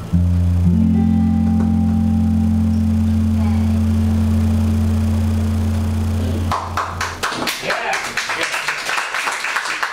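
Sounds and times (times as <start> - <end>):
band holding low chord: 0.0 - 7.6.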